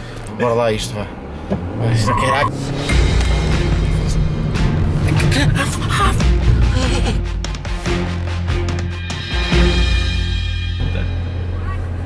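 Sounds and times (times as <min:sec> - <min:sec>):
background music with drum kit: 0:06.2 - 0:11.3.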